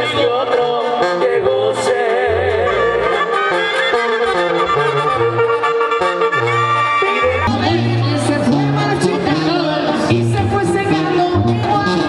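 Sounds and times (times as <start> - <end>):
low bass line: 0.0 - 12.0
wind instruments playing melody: 0.0 - 12.0.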